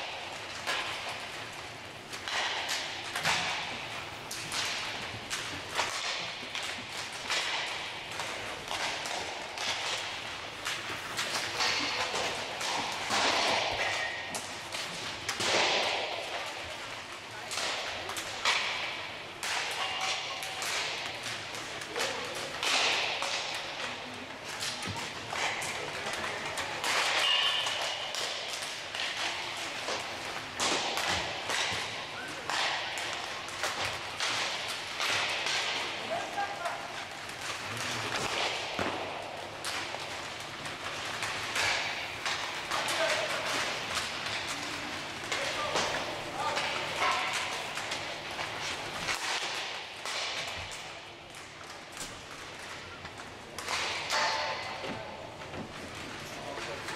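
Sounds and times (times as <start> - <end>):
players' voices: 0.0 - 56.9
pucks striking boards: 0.0 - 56.9
sticks hitting puck: 0.0 - 56.9.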